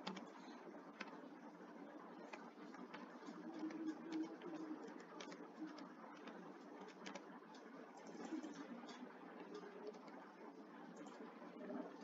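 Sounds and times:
computer keyboard typing: 0.0 - 1.2, 2.2 - 10.2.

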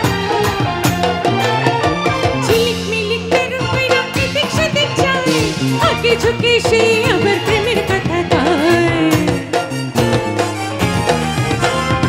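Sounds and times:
band playing: 0.0 - 12.0
woman singing into a microphone: 2.4 - 10.4.

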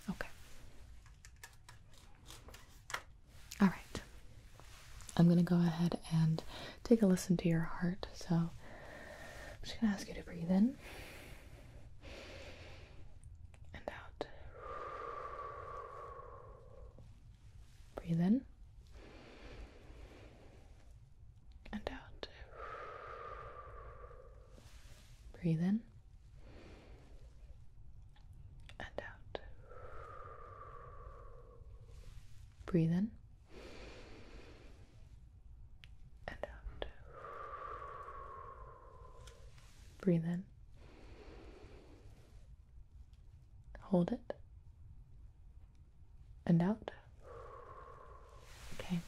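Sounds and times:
soft breath out: 6.3 - 6.9, 8.2 - 13.2, 14.2 - 18.1, 22.1 - 25.4, 29.3 - 32.7, 33.4 - 35.2, 36.4 - 40.1, 40.7 - 42.6, 46.9 - 49.0.

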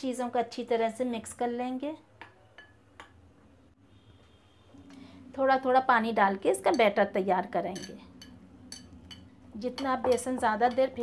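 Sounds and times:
metal spoon clinking glass bowl: 2.6 - 3.2, 7.7 - 11.0.

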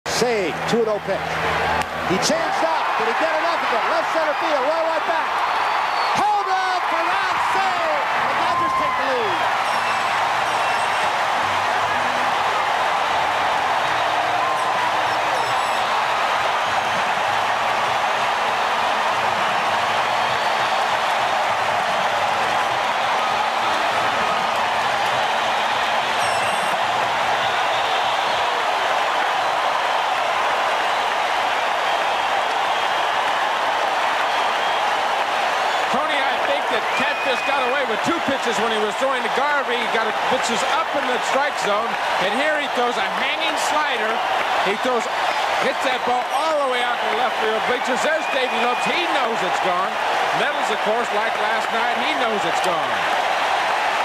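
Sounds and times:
stadium crowd cheering: 0.1 - 54.0.

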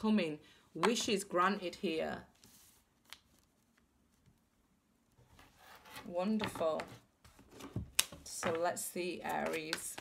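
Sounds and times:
cards sliding on a tabletop: 2.4 - 2.9, 5.3 - 6.1.

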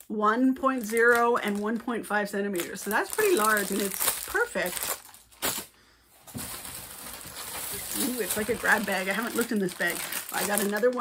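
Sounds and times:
bag rustling: 6.2 - 11.0.

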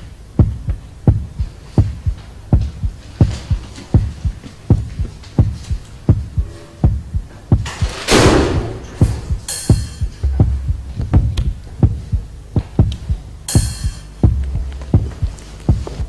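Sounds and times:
deep heartbeat thumps: 0.0 - 16.0
faint hum: 0.0 - 16.0.

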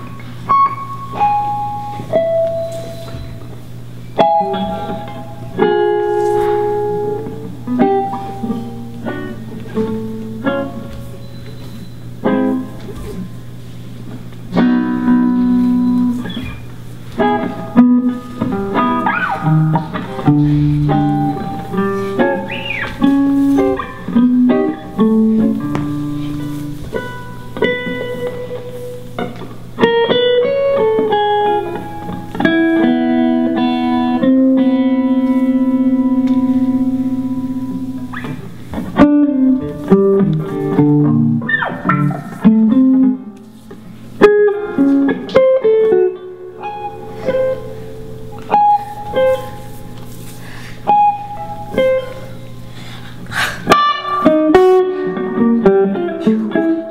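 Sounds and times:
steady low hum: 0.0 - 44.2
improvised guitar playing: 0.0 - 56.9.

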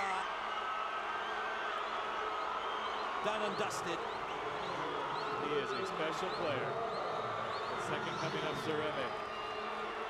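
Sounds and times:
stadium crowd cheering: 0.0 - 10.0.

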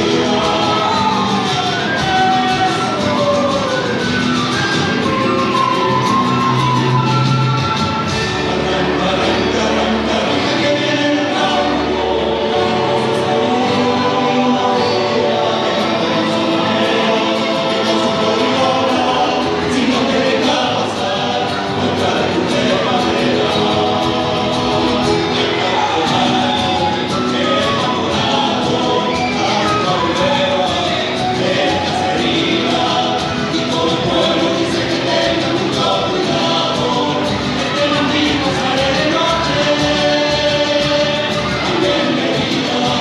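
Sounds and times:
folk music accompaniment: 0.0 - 43.0
voices singing together: 0.0 - 43.0.

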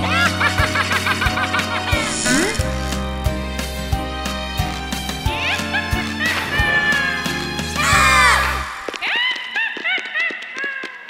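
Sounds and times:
rising vocal glide: 2.0 - 2.6.

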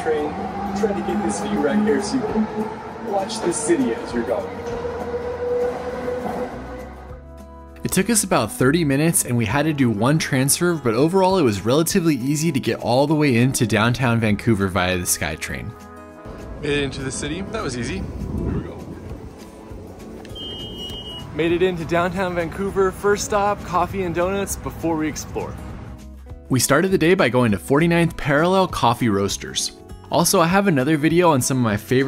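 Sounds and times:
train whine and rolling noise: 0.0 - 6.7
quiet background music: 0.0 - 32.0
high electronic beep: 20.3 - 21.3.

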